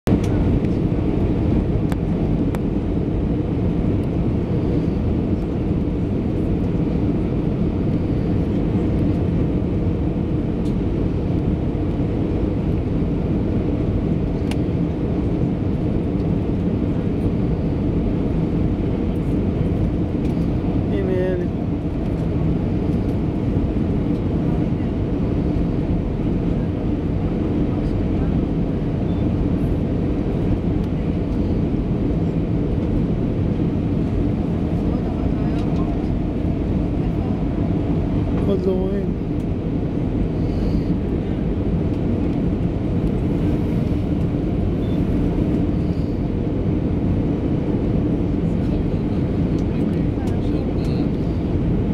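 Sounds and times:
airliner cabin drone: 0.1 - 51.9.

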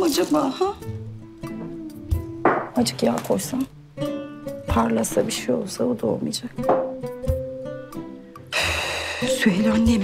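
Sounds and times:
plucked string background music: 0.0 - 10.0.

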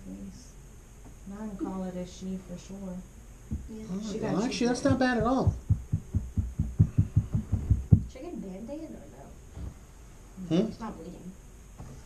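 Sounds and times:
rapid low thumps: 3.4 - 3.8, 4.7 - 8.2.

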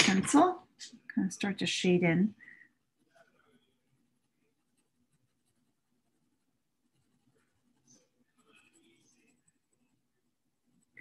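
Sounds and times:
pencil scratching on paper: 3.0 - 11.0.

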